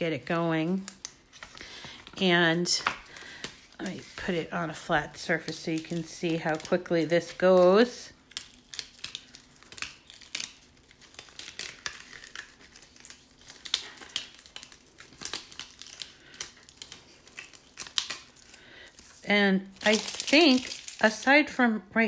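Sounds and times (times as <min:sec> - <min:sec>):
vinyl peeling and crinkling: 0:00.0 - 0:21.4.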